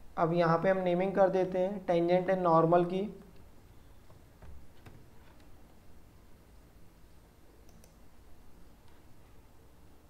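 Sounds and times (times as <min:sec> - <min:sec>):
faint computer mouse clicks: 0:07.6 - 0:08.0.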